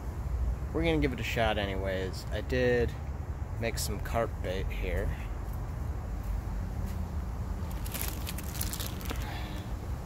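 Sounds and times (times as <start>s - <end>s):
plastic bag crinkling: 7.6s - 9.7s.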